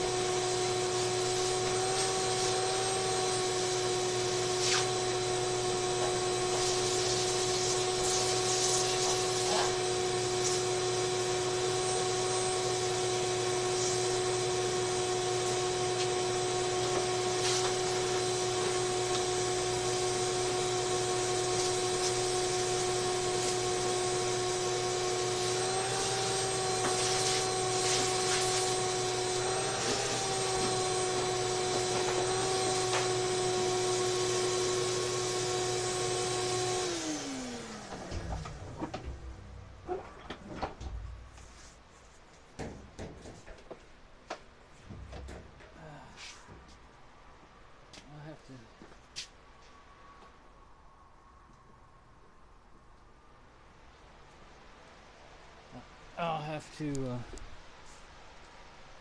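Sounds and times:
vacuum cleaner whining: 0:00.0 - 0:42.0.

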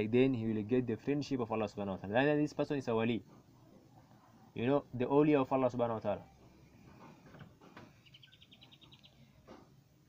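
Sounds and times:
rapid high chirping trill: 0:08.0 - 0:09.3.

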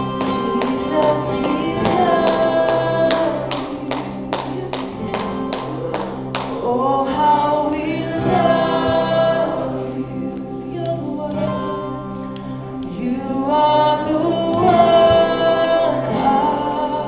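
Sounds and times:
woman singing into a microphone: 0:00.0 - 0:05.5, 0:06.6 - 0:17.0
acoustic guitar strumming: 0:00.0 - 0:17.0.

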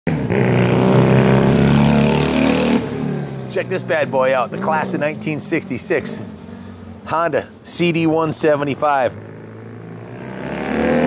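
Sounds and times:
motorcycle engine passing by: 0:00.1 - 0:07.0, 0:09.1 - 0:11.0.

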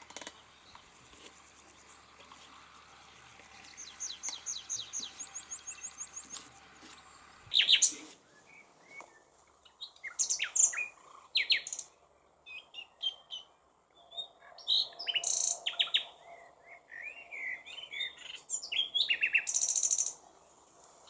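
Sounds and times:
songbirds chirping and whistling: 0:00.0 - 0:20.6.

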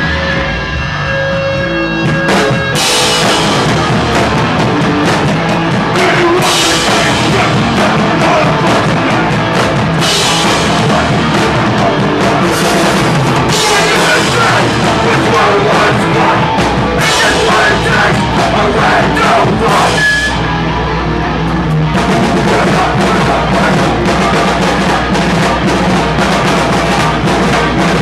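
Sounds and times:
loud distorted band playing: 0:00.0 - 0:28.0.

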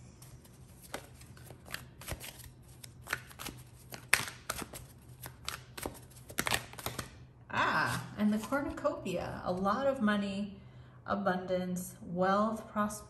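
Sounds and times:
cards being shuffled by hand: 0:00.2 - 0:07.2.

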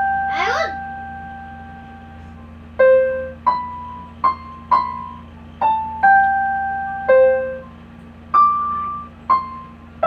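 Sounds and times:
electronic piano note: 0:00.0 - 0:10.0.

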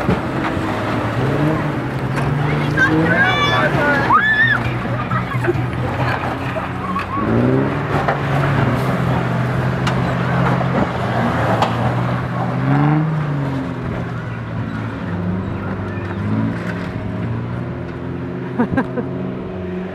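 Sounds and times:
engine pulling under load: 0:00.0 - 0:19.9.

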